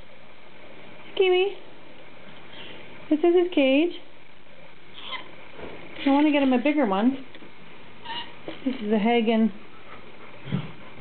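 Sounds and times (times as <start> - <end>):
room hiss: 0.0 - 11.0.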